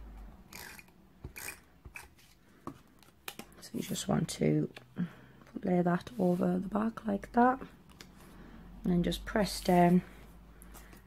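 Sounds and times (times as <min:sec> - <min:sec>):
tape dispenser ratcheting rasp: 0:00.5 - 0:02.1.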